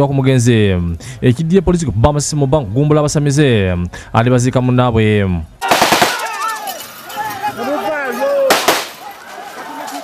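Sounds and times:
man speaking: 0.0s - 5.6s.

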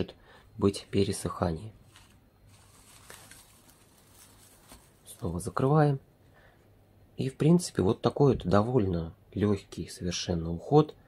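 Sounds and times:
cling film crinkling: 1.8s - 5.6s.

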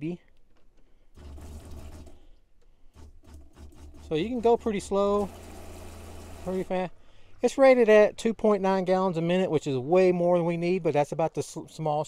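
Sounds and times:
water pump pulsing hum: 1.2s - 2.2s, 3.0s - 7.0s.

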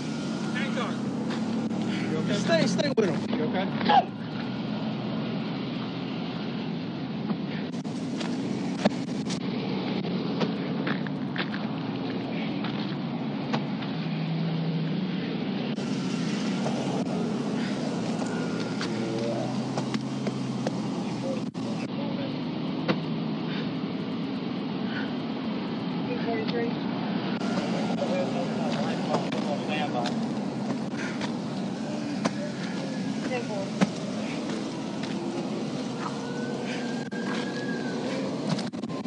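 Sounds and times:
car engine low rumble: 0.0s - 39.0s.

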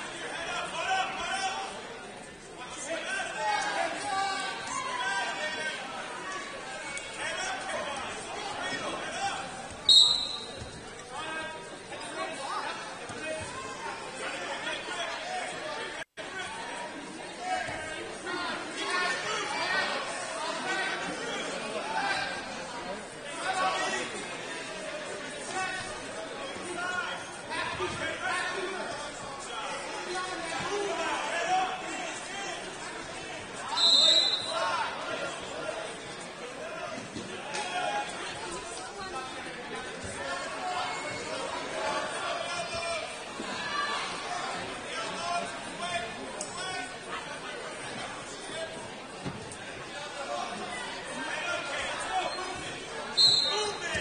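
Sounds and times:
background chatter: 0.0s - 54.0s
voices in a gym: 0.0s - 54.0s
referee's whistle blast: 9.9s - 10.6s, 33.7s - 34.6s, 53.2s - 53.8s.

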